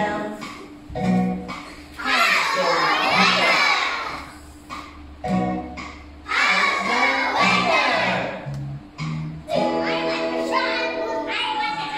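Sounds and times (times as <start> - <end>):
children shouting: 2.0 - 4.4, 6.3 - 8.4.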